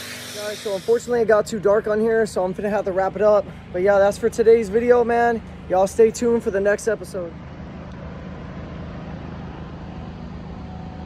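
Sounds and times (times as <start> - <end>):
motor humming: 0.0 - 1.7.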